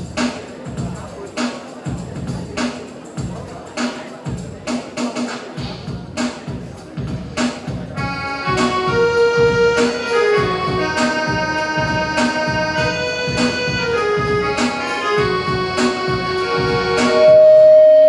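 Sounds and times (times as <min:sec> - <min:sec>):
drum machine beat: 0:00.0 - 0:17.7
electronic keyboard chords: 0:07.9 - 0:18.0.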